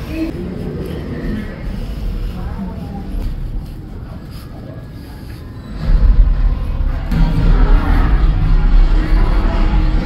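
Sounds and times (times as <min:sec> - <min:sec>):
loud music with heavy bass: 0:05.8 - 0:10.0.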